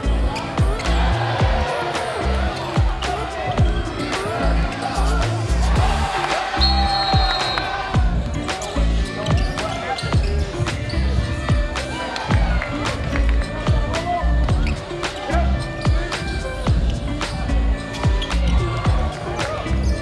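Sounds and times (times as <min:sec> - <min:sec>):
music with sliding bass notes: 0:00.0 - 0:06.9, 0:08.0 - 0:20.0.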